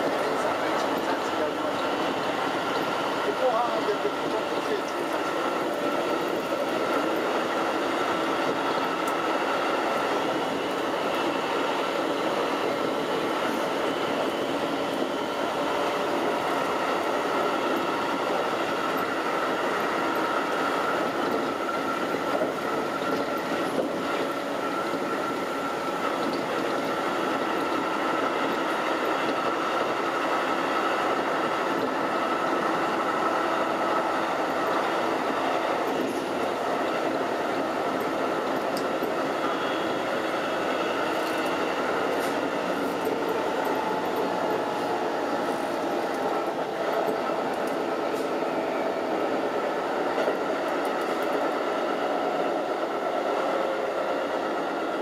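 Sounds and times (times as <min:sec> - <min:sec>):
electric train whine: 0:00.0 - 0:55.0
train wheels rumbling on rail: 0:00.0 - 0:55.0.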